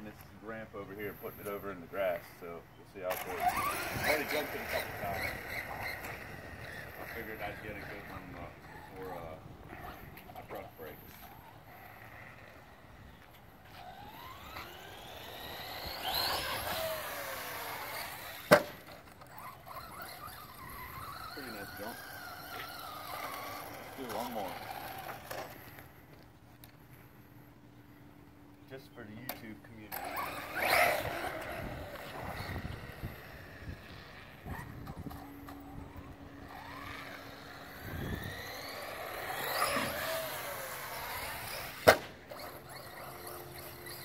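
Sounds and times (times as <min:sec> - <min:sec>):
toy truck electric motor whining: 0:03.0 - 0:26.2, 0:29.9 - 0:44.0.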